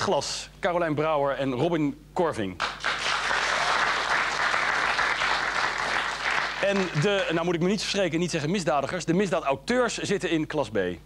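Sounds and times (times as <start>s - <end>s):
audience applauding: 2.6s - 7.4s.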